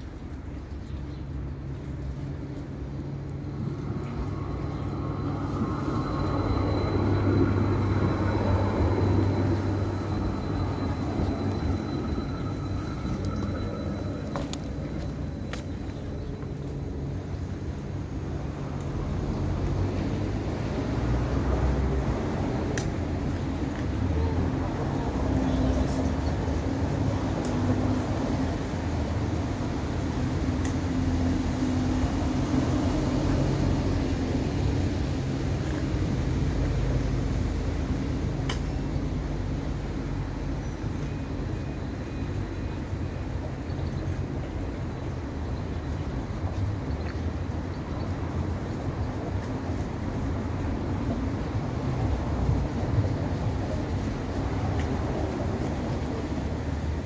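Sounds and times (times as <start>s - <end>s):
electric tram motors whining: 1.2s - 46.6s.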